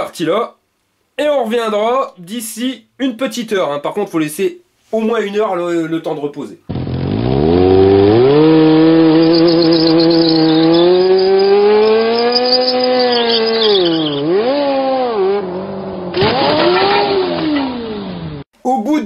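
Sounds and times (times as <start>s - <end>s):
motorcycle engine revving: 6.7s - 18.5s.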